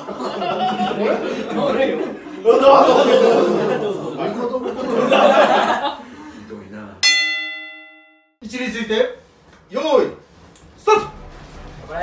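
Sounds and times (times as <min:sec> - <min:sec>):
bell chime: 0:07.0 - 0:08.4.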